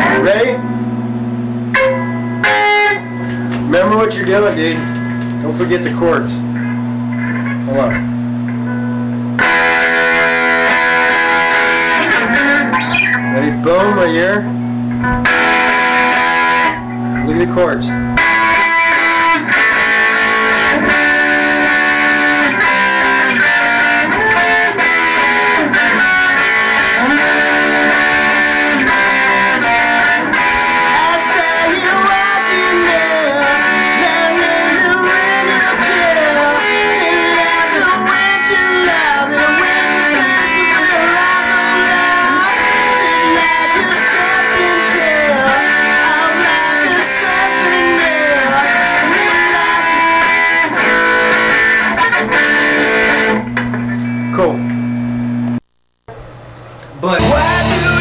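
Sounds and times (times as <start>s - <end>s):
electric guitar with bending notes: 0.0s - 58.0s.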